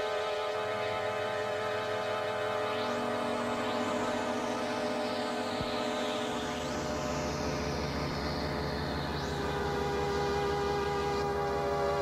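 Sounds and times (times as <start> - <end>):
falling high synth sweep: 0.0 - 12.0
low rapid pulsing synth: 0.0 - 12.0
synthesizer drone tones: 0.0 - 12.0.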